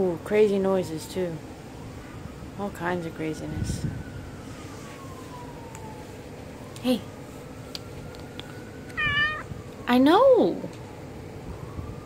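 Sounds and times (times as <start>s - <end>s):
kitten meowing: 8.9s - 9.5s.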